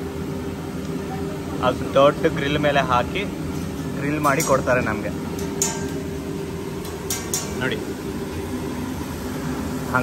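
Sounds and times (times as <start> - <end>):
exhaust hood drone: 0.0 - 10.0.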